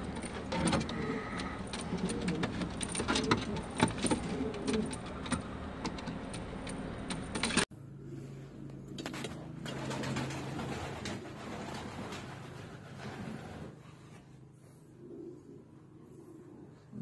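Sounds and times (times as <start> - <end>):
pigeons cooing: 0.0 - 5.9, 7.9 - 17.0.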